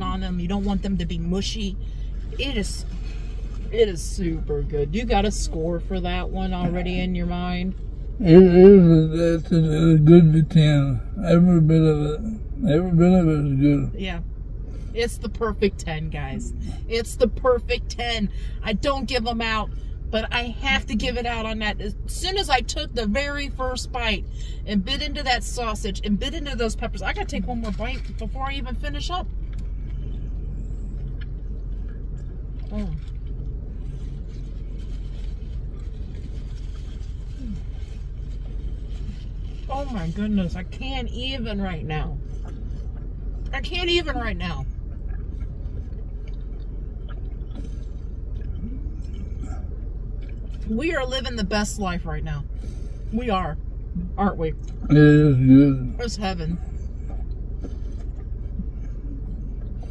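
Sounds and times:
car engine idling: 0.0 - 59.9
people chewing: 44.9 - 49.6.

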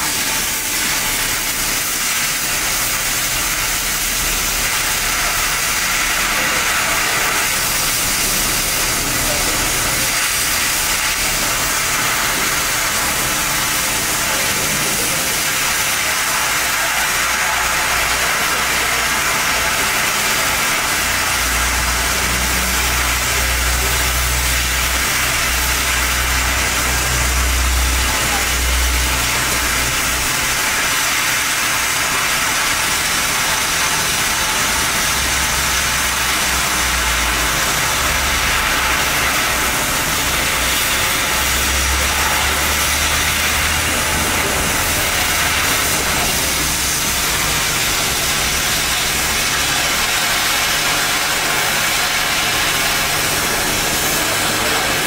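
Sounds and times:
cutting torch hissing: 0.0 - 55.0.

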